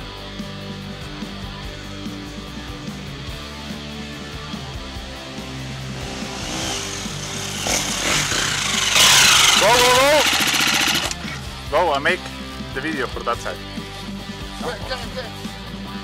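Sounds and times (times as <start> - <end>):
dirt bike engine revving: 5.2 - 11.5.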